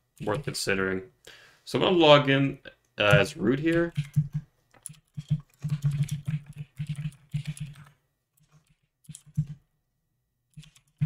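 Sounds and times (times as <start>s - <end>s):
computer keyboard typing: 0.2s - 0.6s, 3.0s - 9.6s, 10.5s - 11.0s.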